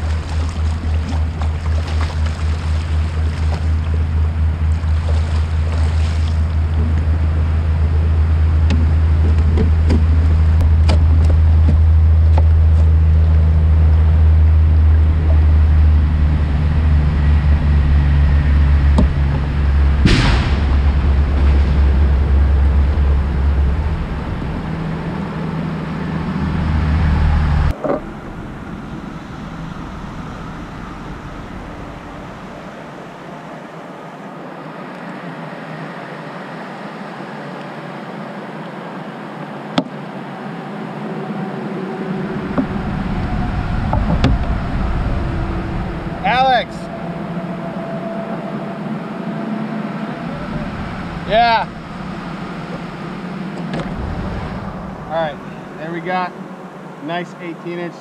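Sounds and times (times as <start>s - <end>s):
low wind rumble on microphone: 0.0s - 57.0s
tyre blowout bang: 19.9s - 23.6s.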